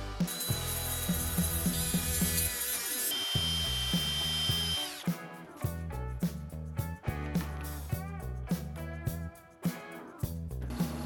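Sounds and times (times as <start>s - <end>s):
background music with beat: 0.0s - 2.7s, 3.4s - 11.0s
power tool whining: 0.1s - 5.1s.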